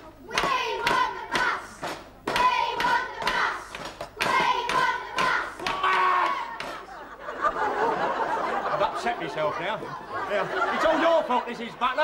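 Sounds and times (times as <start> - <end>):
hands beating a rhythm: 0.0 - 6.9
children chanting: 0.2 - 7.0.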